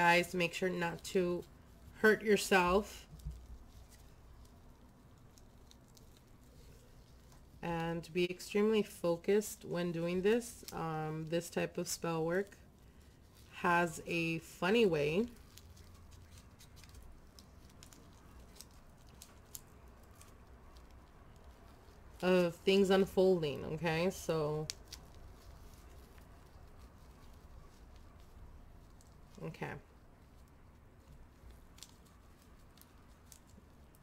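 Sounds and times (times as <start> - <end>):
soft handling clicks and rustles: 0.0 - 34.0.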